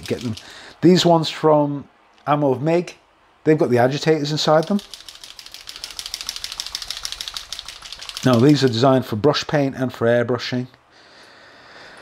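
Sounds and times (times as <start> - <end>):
paint bottle ball rattling: 4.5 - 8.9.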